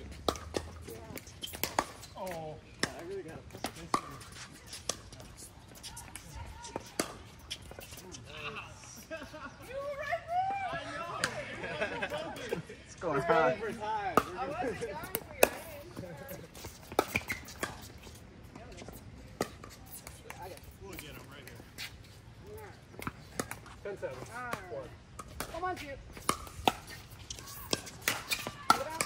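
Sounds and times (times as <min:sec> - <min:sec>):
people talking: 0:02.2 - 0:16.7, 0:27.4 - 0:29.0.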